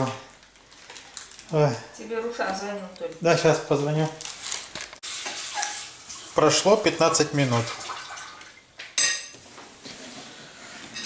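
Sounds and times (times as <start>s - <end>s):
faint kitchen background: 0.0s - 11.0s
kitchenware clink: 9.0s - 9.4s.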